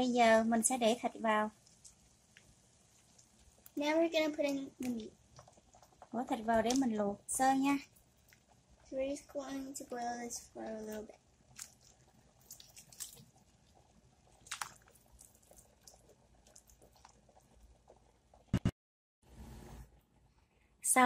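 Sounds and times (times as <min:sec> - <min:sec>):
water bubbling at a gentle boil: 0:00.2 - 0:18.5.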